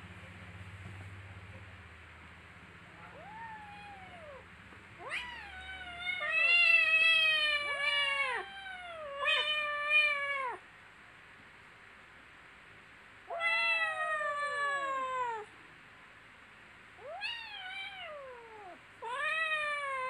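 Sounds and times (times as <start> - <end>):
kittens meowing: 3.1 - 4.4, 5.0 - 10.6, 13.3 - 15.5, 17.0 - 20.0.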